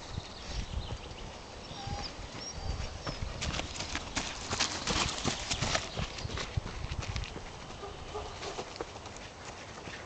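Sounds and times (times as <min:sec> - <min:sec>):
running footsteps on gravelly grass: 0:02.3 - 0:10.0
dog trotting: 0:03.0 - 0:09.2.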